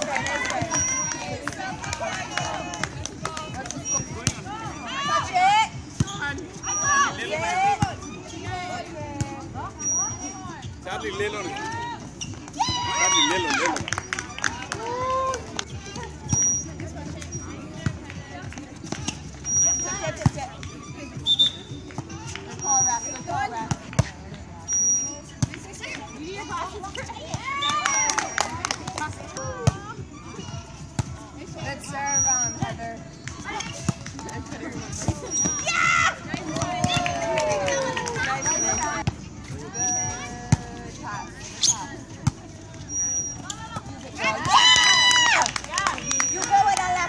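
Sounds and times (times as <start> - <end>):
players and crowd voices: 0.0 - 47.0
shoe squeaks on court: 0.5 - 2.8, 3.6 - 14.3, 15.6 - 17.9, 18.8 - 37.0, 38.2 - 44.4
referee's whistle: 0.6 - 1.2, 3.8 - 4.2, 6.0 - 7.2, 9.8 - 10.4, 16.3 - 16.7, 19.4 - 20.2, 21.2 - 21.8, 22.6 - 23.3, 24.7 - 25.2, 27.4 - 28.5, 32.0 - 32.7, 35.2 - 35.8, 38.3 - 39.0, 39.7 - 40.3, 42.9 - 43.5, 46.0 - 46.5
people shouting and calling: 12.6 - 13.8, 14.4 - 15.5, 35.0 - 39.0, 44.2 - 47.0
volleyball hits: 34.9 - 39.2.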